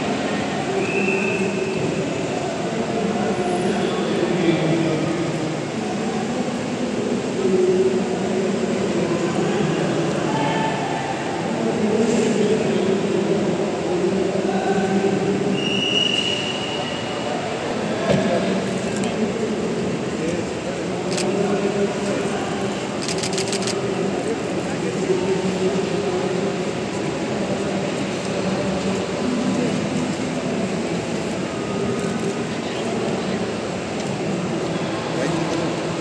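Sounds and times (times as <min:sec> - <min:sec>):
faint voices: 0:00.0 - 0:36.0
vehicles at busy kerbside: 0:00.0 - 0:36.0
idling cars and traffic rumble: 0:17.2 - 0:36.0.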